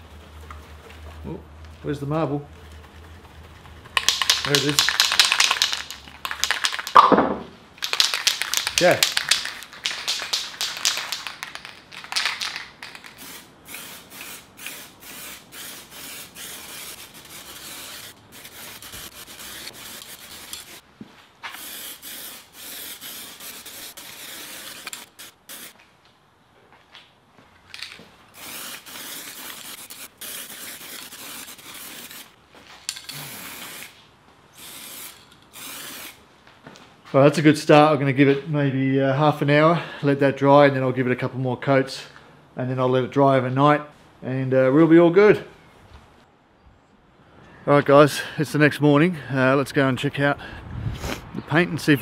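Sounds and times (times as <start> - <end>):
mixing ball rattling in can: 2.6 - 7.1, 7.8 - 13.4
spray paint can hissing: 2.6 - 7.1, 7.8 - 20.8, 21.4 - 25.8, 28.3 - 32.4, 33.1 - 36.2.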